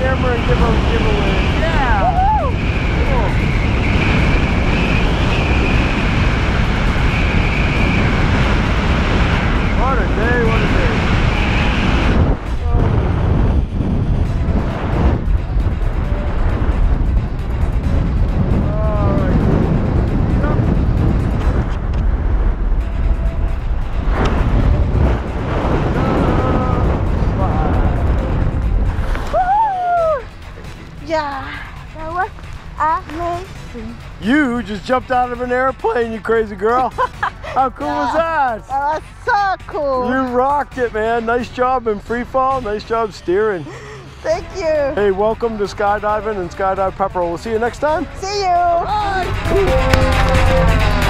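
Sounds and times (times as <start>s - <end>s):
wind rushing over microphone: 0.0s - 51.0s.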